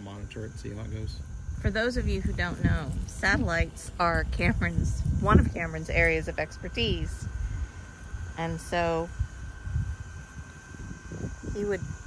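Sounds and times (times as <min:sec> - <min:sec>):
faint high whine: 0:00.0 - 0:12.0
wind buffeting microphone: 0:00.0 - 0:12.0.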